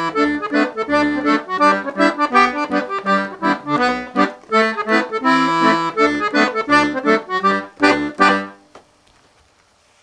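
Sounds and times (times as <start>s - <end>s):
accordion chords: 0.0s - 8.7s.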